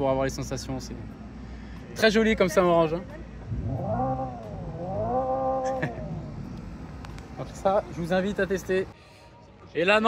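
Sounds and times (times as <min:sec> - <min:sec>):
synthetic engine sound revving: 0:03.5 - 0:06.6.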